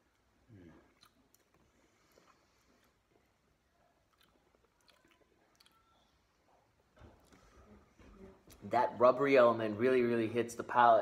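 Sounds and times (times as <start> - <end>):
soft mouth clicks: 0.5 - 3.0.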